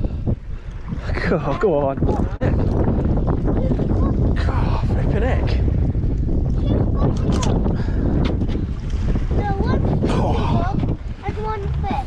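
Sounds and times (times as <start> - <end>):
water sloshing against hull: 0.0 - 12.0
wind buffeting microphone: 0.0 - 12.0
loud low rumbling: 2.2 - 12.0.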